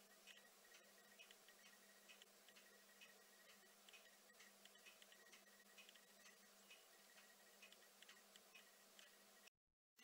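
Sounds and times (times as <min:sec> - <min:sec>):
faint hum: 0:00.0 - 0:09.5.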